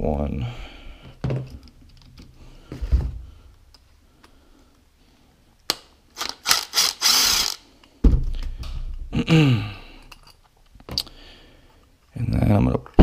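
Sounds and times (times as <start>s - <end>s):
cordless impact driver bursts: 6.2s - 7.6s.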